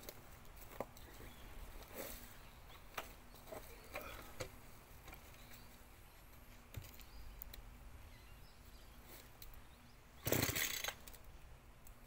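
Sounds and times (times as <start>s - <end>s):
chainsaw burst: 10.2s - 11.0s.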